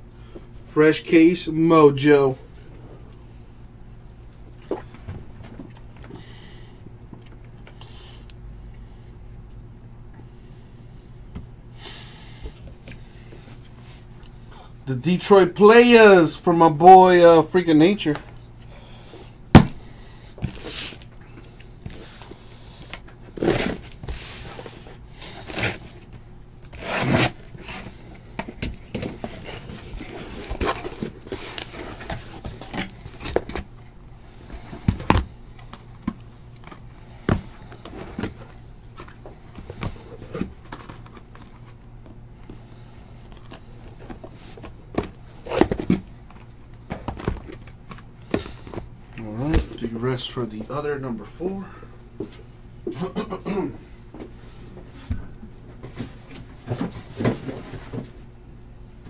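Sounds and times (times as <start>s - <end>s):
cardboard scraping: 23.3s - 26.1s, 26.7s - 28.0s, 28.6s - 33.7s
plastic wrap rustling: 28.8s - 33.7s.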